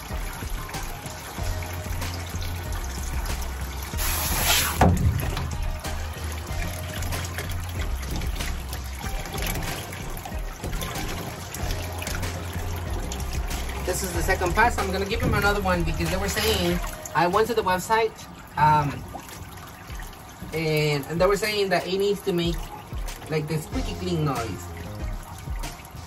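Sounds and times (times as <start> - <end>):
background music: 0.0 - 26.0
water trickling in metal tub: 0.0 - 26.0.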